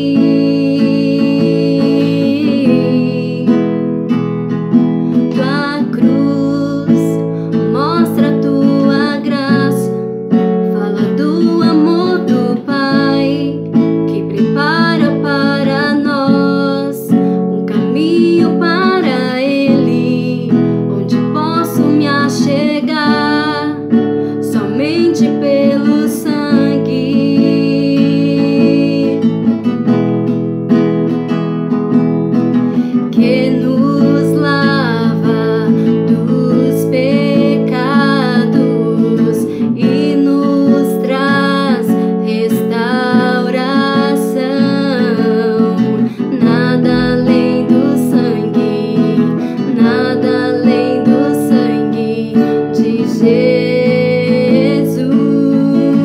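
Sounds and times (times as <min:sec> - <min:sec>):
woman singing: 0:00.0 - 0:30.1, 0:31.9 - 0:56.0
acoustic guitar strumming: 0:00.0 - 0:56.0.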